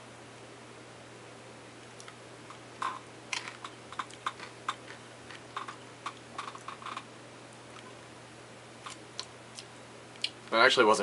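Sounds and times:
chewing: 3.5s - 7.0s.

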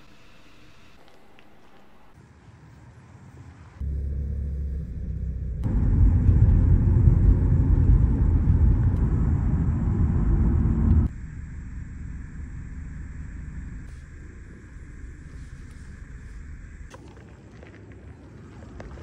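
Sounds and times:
road and engine rumble in car: 3.8s - 17.0s.

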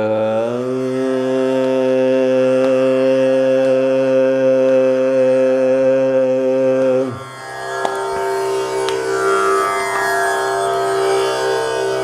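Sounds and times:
man singing a held note: 0.0s - 7.3s.

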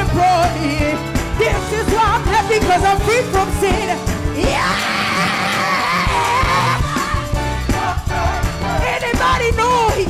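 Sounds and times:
congregation singing: 4.5s - 9.7s.

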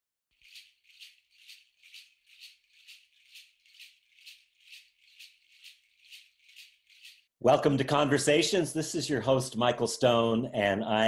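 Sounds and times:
shaker shaken rhythmically: 0.3s - 7.3s.

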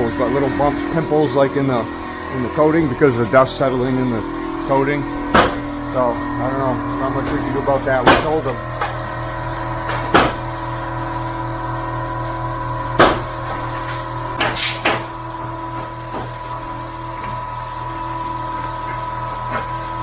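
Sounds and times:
steady machine hum: 0.0s - 20.0s
sharp knocks: 5.3s - 5.7s, 8.0s - 8.4s, 9.9s - 10.4s, 13.0s - 13.3s.

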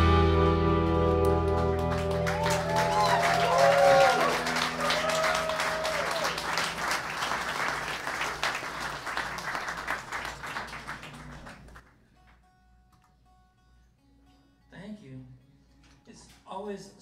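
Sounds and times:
rock band chord ringing: 0.0s - 6.9s
audience applauding and cheering: 1.0s - 11.8s.

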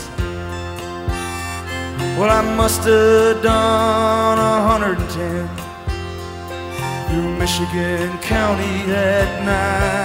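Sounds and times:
harmonica playing held notes: 0.0s - 10.0s
rock band accompaniment: 0.0s - 10.0s
person singing: 1.9s - 5.9s, 6.8s - 10.0s.

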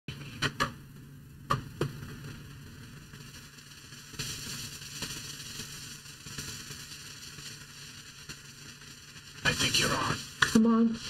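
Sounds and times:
hiss: 3.2s - 11.0s.

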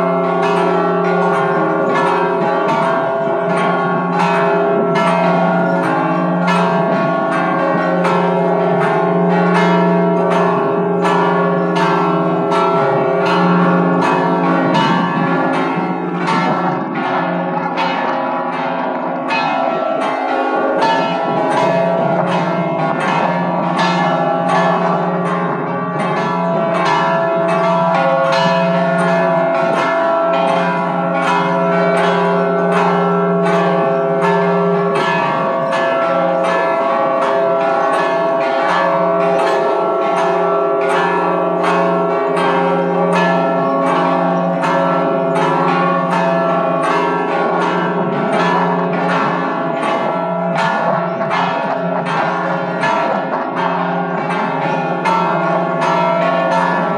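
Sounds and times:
church bells pealing: 0.0s - 56.9s.

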